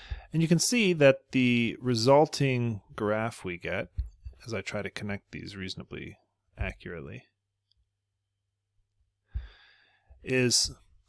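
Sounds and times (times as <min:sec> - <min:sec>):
man breathing in: 0:00.0 - 0:00.3, 0:09.2 - 0:10.2.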